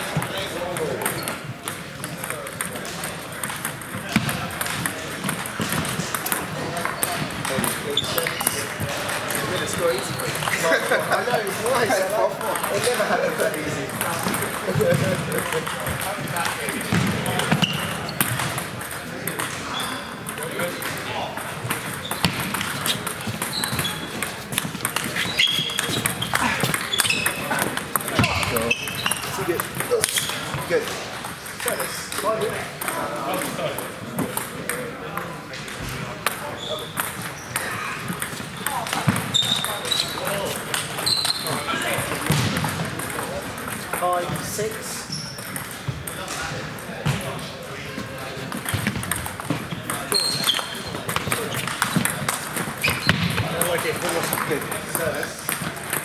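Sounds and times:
table tennis balls clicking: 0:00.0 - 0:46.9, 0:48.3 - 0:56.0
chatter of voices: 0:00.0 - 0:56.0.

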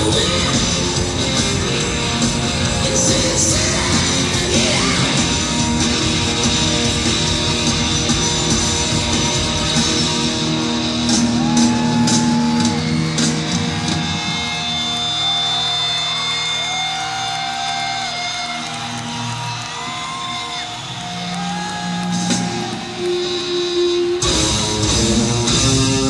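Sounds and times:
live rock band playing: 0:00.0 - 0:26.0.

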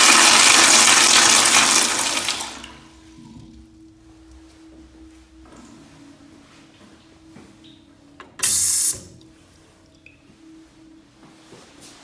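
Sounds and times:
toilet flushing: 0:00.0 - 0:03.7
faint steady hum: 0:01.4 - 0:12.0.

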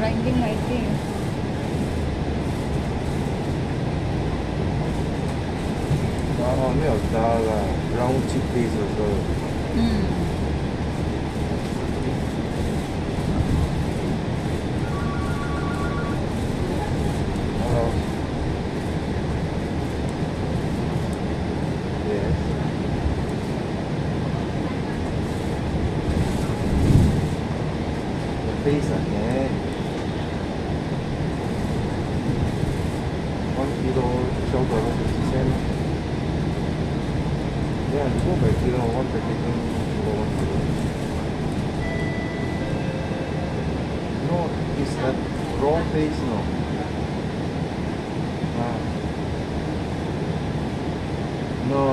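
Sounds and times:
bus engine and road rumble: 0:00.0 - 0:51.9
electronic two-note beep: 0:14.8 - 0:16.2, 0:41.8 - 0:43.3.

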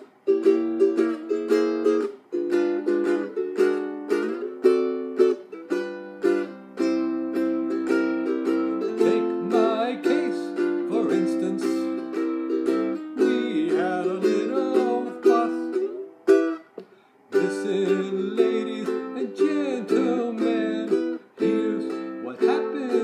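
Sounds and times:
ukulele strumming chords: 0:00.0 - 0:23.0.

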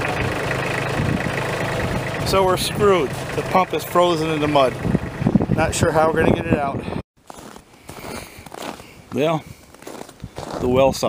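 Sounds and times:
footsteps in snow: 0:07.2 - 0:11.0.

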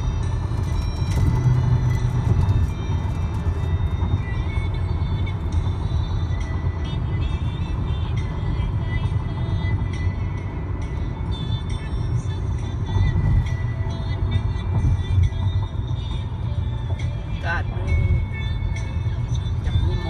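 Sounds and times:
car cabin road noise: 0:00.0 - 0:20.0
music playing: 0:00.0 - 0:20.0.

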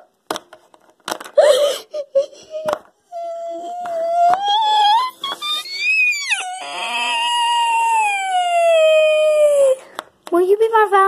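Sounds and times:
child wailing: 0:03.1 - 0:09.8.

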